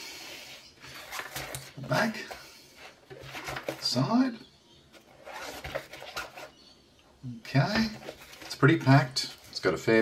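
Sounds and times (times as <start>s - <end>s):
fabric pouch rustling: 5.1s - 6.5s.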